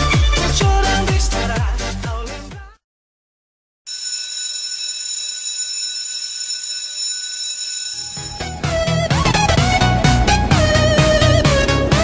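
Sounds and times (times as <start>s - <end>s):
music: 0.0s - 2.8s, 8.2s - 12.0s
alarm bell ringing: 3.9s - 9.3s.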